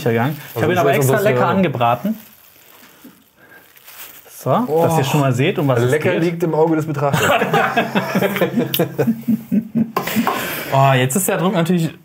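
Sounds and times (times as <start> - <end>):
soft rustling: 0.0 - 6.8.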